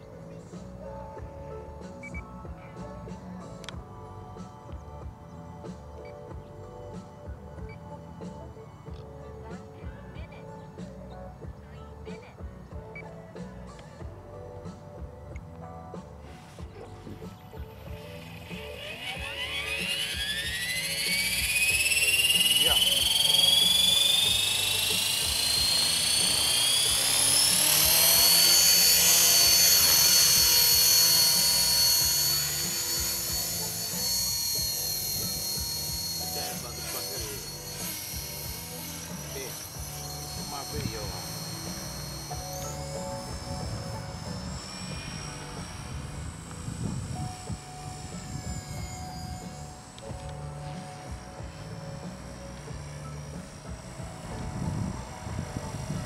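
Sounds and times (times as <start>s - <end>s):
rc helicopter rotor whine: 0.0s - 56.0s.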